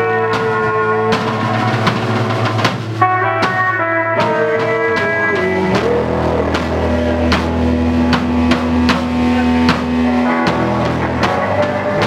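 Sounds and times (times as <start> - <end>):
drums striking steady beat: 0.0 - 12.0
sustained low bass and guitar note: 0.0 - 12.0.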